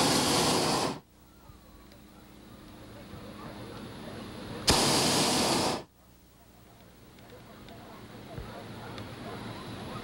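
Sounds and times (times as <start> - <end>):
propane burner blast: 0.0 - 1.1, 3.8 - 5.9.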